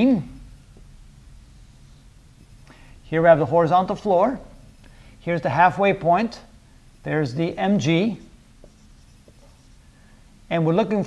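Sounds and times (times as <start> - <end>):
marker drawing on whiteboard: 7.6 - 9.9.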